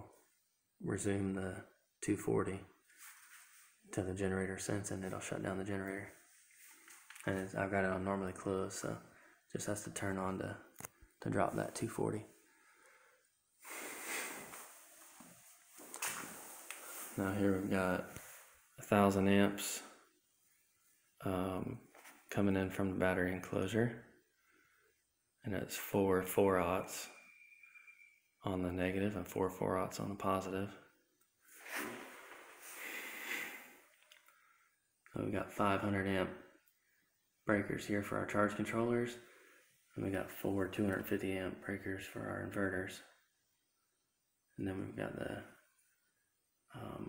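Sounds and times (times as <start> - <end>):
soft breathy rustling: 2.8 - 3.8, 6.1 - 7.1, 12.4 - 18.7
person breathing: 9.0 - 9.5, 12.4 - 14.8, 31.5 - 34.8, 39.2 - 39.8.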